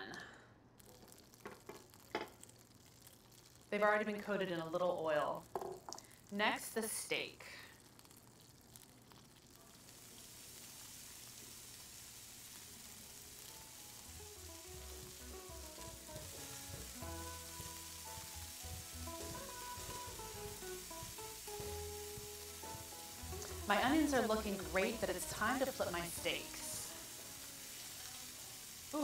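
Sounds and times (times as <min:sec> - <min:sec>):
steak and onions sizzling: 0:00.8 - 0:29.0
soft background music: 0:13.4 - 0:29.0.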